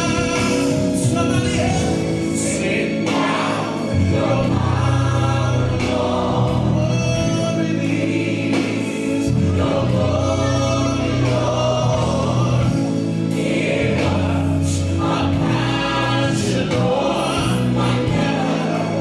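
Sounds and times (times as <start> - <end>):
choir singing gospel: 0.0 - 19.0
steady bass line: 0.0 - 19.0.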